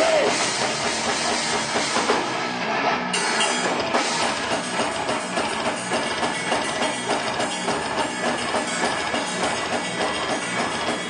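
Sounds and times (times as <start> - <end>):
drum kit beat: 0.0 - 11.0
electric guitars: 0.0 - 11.0.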